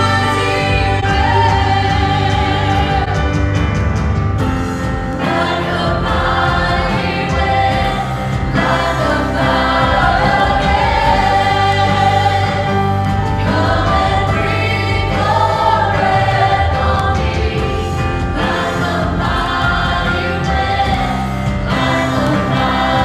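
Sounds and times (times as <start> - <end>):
group singing worship song: 0.0 - 3.7, 4.7 - 23.0
band playing: 0.0 - 23.0.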